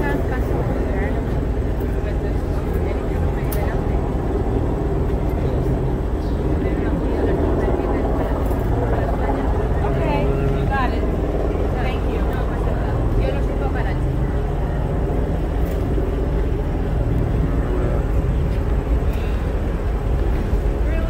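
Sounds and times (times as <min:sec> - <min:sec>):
street traffic rumble: 0:00.0 - 0:21.0.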